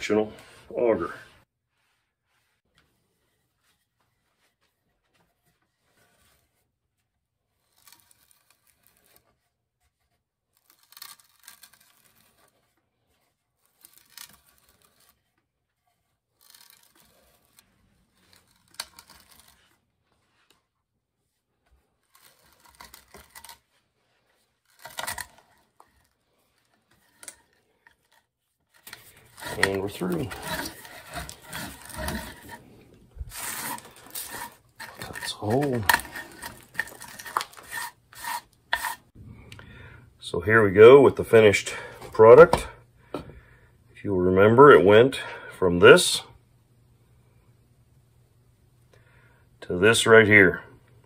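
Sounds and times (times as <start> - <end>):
hand auger boring into wood: 22.1 - 23.6, 24.7 - 28.2, 28.8 - 39.1.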